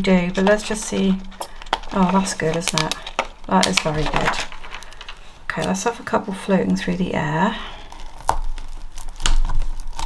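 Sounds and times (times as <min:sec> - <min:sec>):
paper and sticker sheets crinkling: 0:00.0 - 0:10.0.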